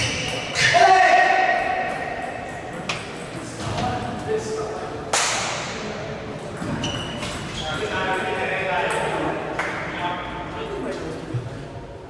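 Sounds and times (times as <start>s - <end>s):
loud sharp echoing crack: 5.1s - 5.8s.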